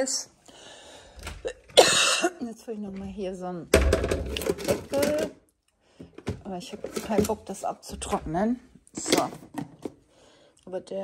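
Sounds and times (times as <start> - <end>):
plastic package clattering and rustling: 4.0 - 5.3, 6.0 - 8.2.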